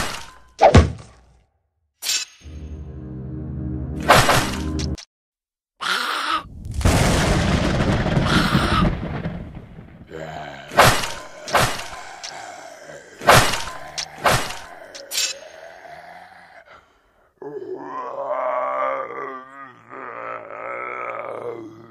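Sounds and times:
explosion short burst: 6.5 - 10.1
loud explosion rumble: 6.5 - 10.2
person groaning: 10.1 - 21.9.

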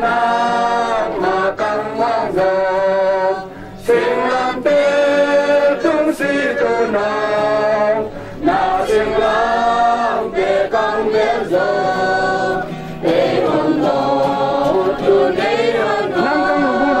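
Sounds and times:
crowd singing a hymn: 0.0 - 17.0.

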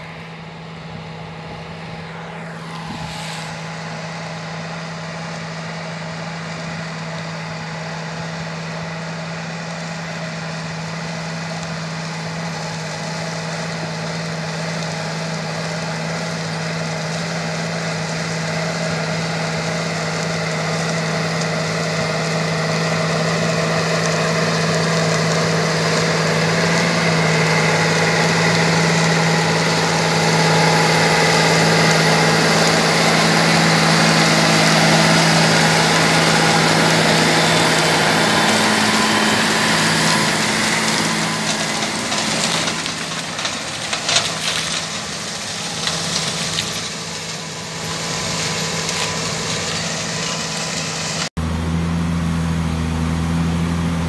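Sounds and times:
tractor diesel engine running: 0.0 - 54.0.

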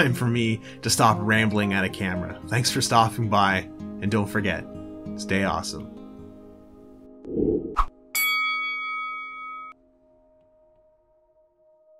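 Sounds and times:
bell-like ding: 8.1 - 9.8.

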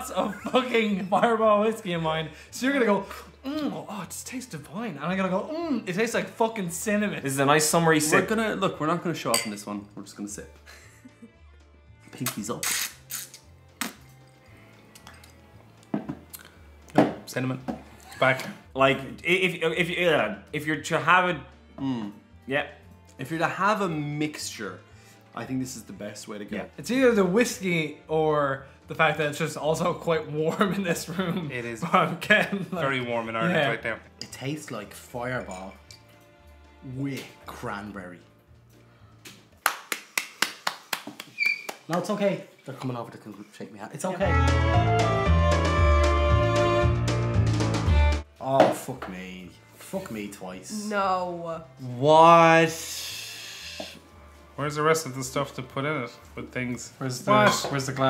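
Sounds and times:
quiet background music: 0.0 - 58.0
speech: 3.5 - 10.5, 54.6 - 58.0
glass set down on table: 15.9 - 16.2
hand claps in quick rhythm: 39.3 - 42.2.

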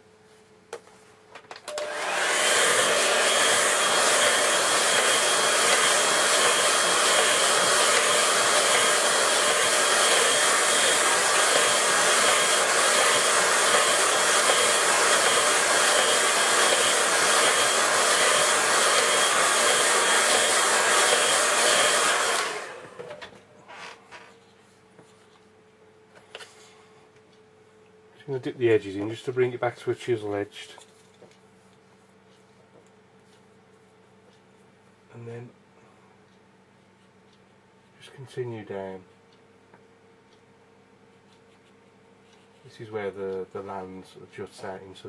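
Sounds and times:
hair dryer blowing: 1.7 - 23.3.

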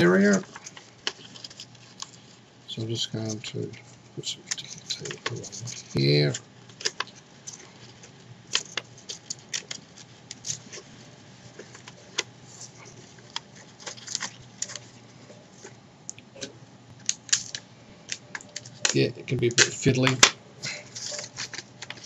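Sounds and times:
paper crinkling: 0.0 - 15.8, 16.9 - 22.0
sticky tape clicks: 16.9 - 19.0.

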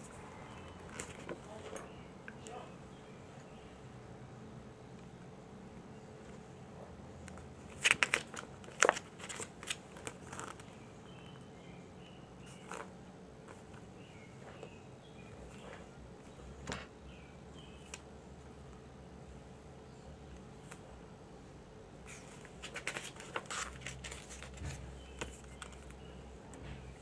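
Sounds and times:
faint steady hum: 0.0 - 27.0
glossy paper pages crackling: 0.5 - 1.6, 7.3 - 11.2, 22.0 - 26.2.

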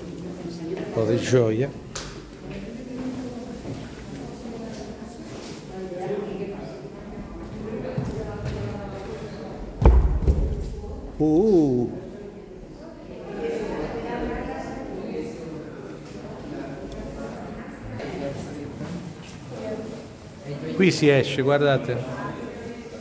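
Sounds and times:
echoing indistinct voices: 0.0 - 23.0
sharp thump: 9.8 - 10.9.

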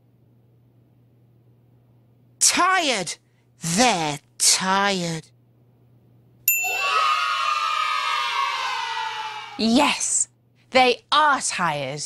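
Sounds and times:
bright bell ding: 6.5 - 7.0
children cheering: 6.6 - 9.6.

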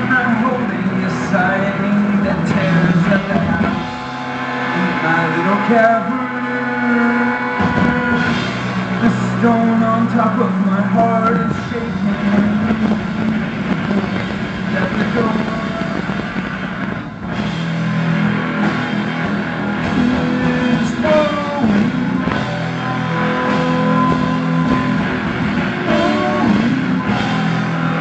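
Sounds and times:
live rock band playing: 0.0 - 28.0.

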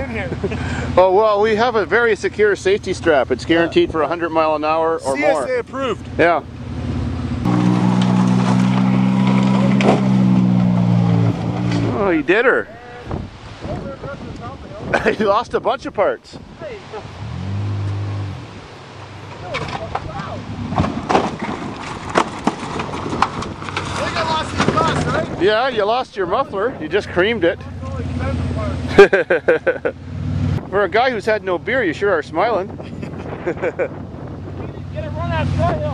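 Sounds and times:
minivan engine at high revs: 5.1 - 12.5, 17.0 - 19.4, 26.9 - 30.7
thump: 7.7 - 11.9, 20.7 - 23.4
loud laughter: 14.9 - 15.4, 28.9 - 30.0, 32.8 - 34.0.

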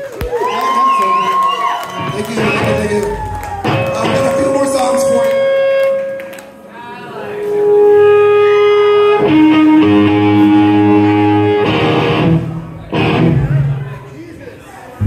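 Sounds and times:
electric guitar chords: 2.4 - 6.4, 7.5 - 14.0.

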